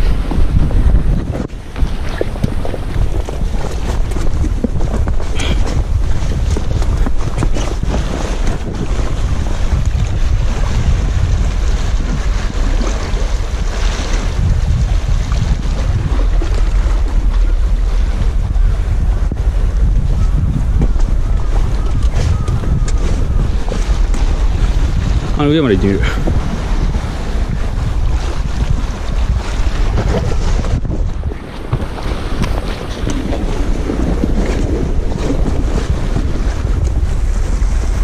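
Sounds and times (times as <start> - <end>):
sea water washing against rocks: 0.0 - 38.0
wind buffeting microphone: 0.0 - 38.0.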